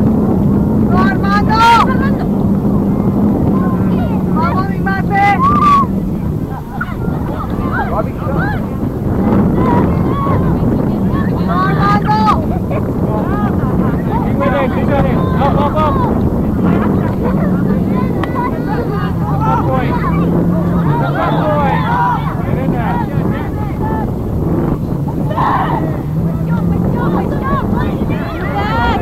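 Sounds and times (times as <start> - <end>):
drone motor hum: 0.0 - 29.0
distant shouts and calls: 0.9 - 12.6, 13.2 - 24.2.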